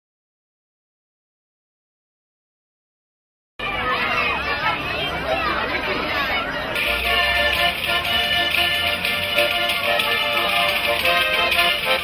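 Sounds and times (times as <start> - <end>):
children chattering: 3.6 - 12.0
accordion music: 6.8 - 12.0.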